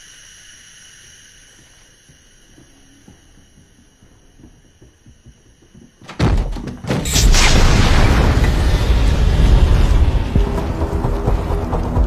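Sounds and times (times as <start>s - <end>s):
sudden loud thud: 6.1s - 10.5s.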